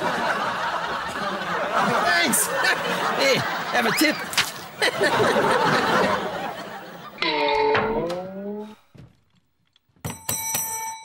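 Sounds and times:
desk service bell ringing: 10.0 - 11.0.

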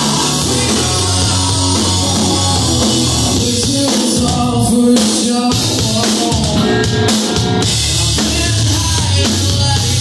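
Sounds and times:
drum kit: 0.0 - 10.0
rock band playing loudly: 0.0 - 10.0.

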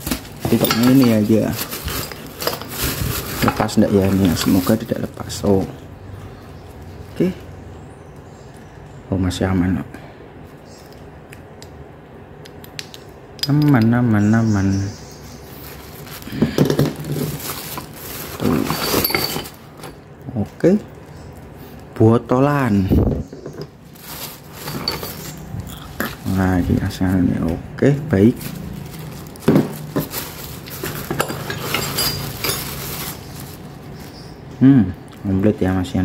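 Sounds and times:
handling noise: 0.0 - 5.8, 15.6 - 21.0, 23.0 - 34.5
plastic bag rustling: 0.0 - 5.8, 15.4 - 34.5
metal gears clinking: 30.8 - 33.0.

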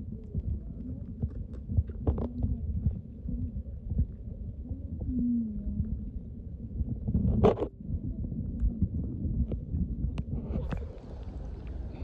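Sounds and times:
small underwater clicks and knocks: 0.0 - 5.1, 6.8 - 12.0
underwater rumble of moving water: 0.0 - 12.0.

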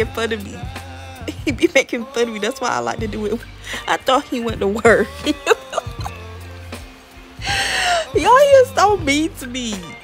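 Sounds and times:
quiet background music: 0.0 - 10.0
woman's breathy gasp: 7.4 - 8.2.

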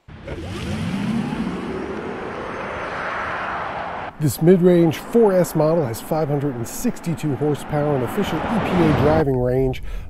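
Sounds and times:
electric car hum: 0.0 - 9.2
tyre and road noise: 0.0 - 9.7.

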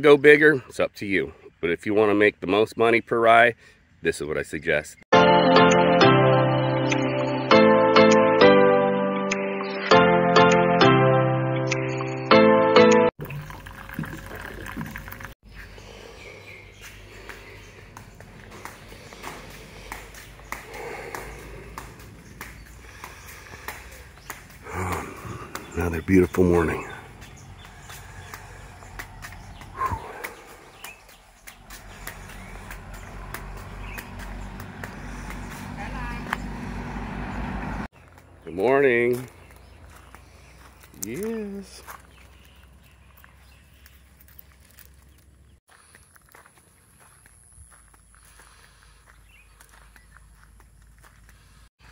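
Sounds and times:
intro music: 5.1 - 13.1
coffee pouring into a mug: 13.2 - 15.4
person calling out: 24.6 - 25.7.

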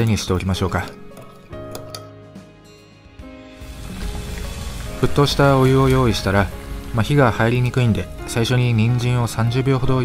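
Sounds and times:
soft background music: 0.0 - 10.0
water boiling in a pot: 3.6 - 8.8.

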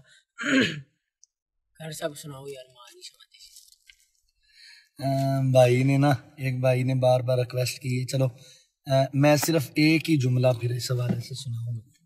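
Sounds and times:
man sighing: 0.4 - 0.8.

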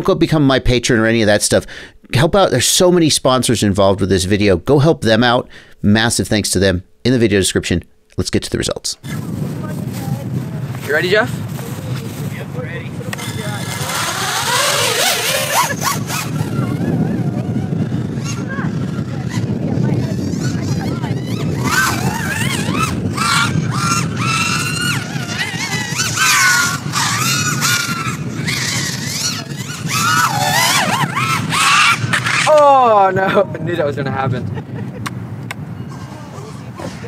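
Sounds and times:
quadcopter motors whining: 9.0 - 32.8.

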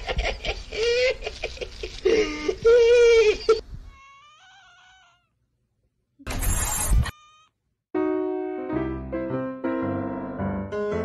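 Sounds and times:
cat meowing harshly: 3.9 - 5.3, 6.7 - 7.5.

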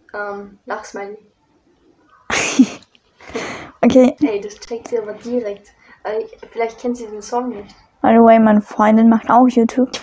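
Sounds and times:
woman's stifled laughter: 2.3 - 3.6.

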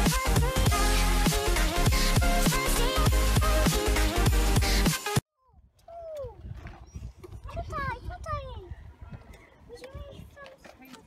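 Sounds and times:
background music: 0.0 - 5.2.

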